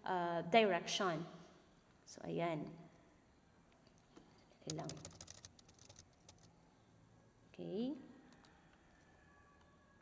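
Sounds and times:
computer keyboard typing: 0:04.6 - 0:06.6.

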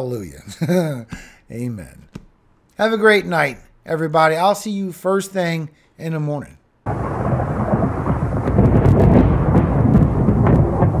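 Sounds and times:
crackles: 0:06.9 - 0:11.0
rain: 0:06.9 - 0:11.0
rumble of thunder: 0:06.9 - 0:11.0.

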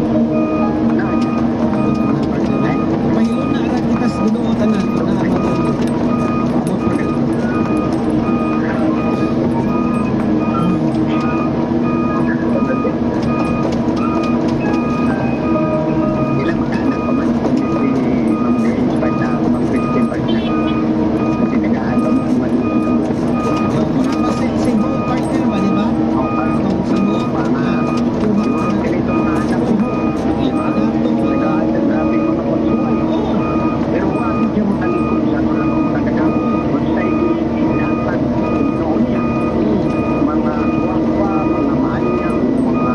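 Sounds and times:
excavator diesel engine running: 0:00.0 - 0:42.9
travel alarm beeping: 0:00.0 - 0:42.9.

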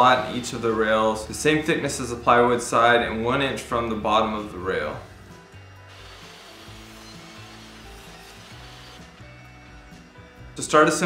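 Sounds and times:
table saw cutting wood: 0:00.0 - 0:00.8, 0:04.8 - 0:09.5
quiet background music: 0:00.0 - 0:11.0.

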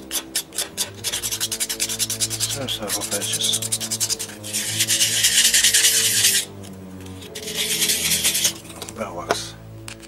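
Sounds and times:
rough rasping scrape on plywood: 0:00.1 - 0:06.5, 0:07.1 - 0:08.7.

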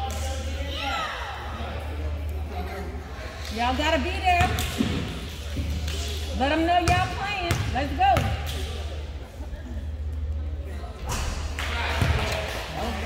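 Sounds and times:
basketball bouncing on gym floor: 0:04.3 - 0:05.7, 0:06.8 - 0:08.6.

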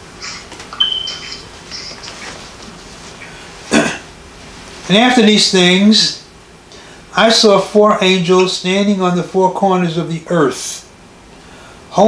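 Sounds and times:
thin high whistle-like tone: 0:00.8 - 0:01.4
pages rustling: 0:01.9 - 0:03.2.

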